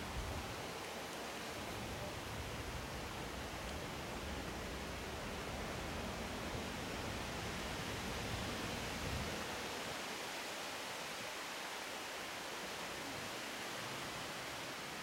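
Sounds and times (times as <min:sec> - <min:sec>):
outdoor background hiss: 0:00.0 - 0:15.0.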